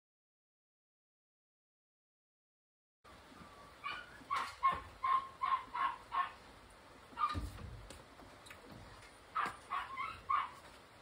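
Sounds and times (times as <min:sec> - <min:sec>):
animal yapping: 0:03.8 - 0:06.4, 0:07.1 - 0:07.6, 0:09.3 - 0:10.7.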